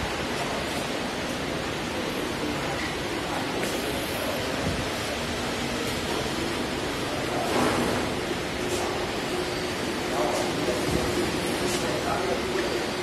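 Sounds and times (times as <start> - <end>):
faint machine hum: 0.0 - 13.0
workshop background rushing: 0.0 - 13.0.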